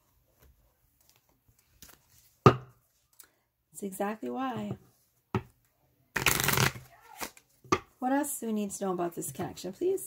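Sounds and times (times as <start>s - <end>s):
cards snapping: 6.2s - 7.4s
cards riffling: 6.2s - 7.5s.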